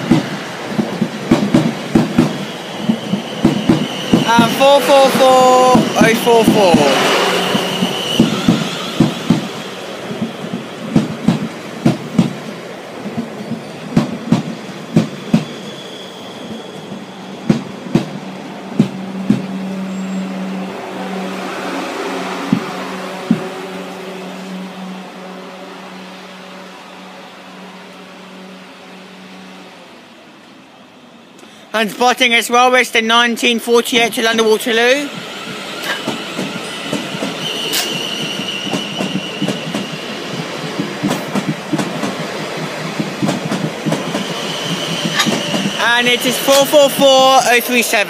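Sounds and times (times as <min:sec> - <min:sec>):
train wheels clacking over rail joints: 0:00.0 - 0:15.7, 0:16.8 - 0:19.6, 0:22.4 - 0:23.6, 0:35.8 - 0:47.4
train hum: 0:00.0 - 0:48.0.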